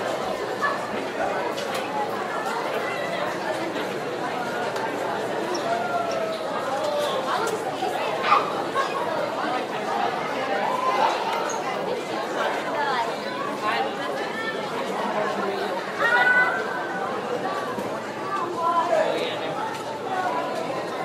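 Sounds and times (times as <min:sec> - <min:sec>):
students chattering: 0:00.0 - 0:21.0.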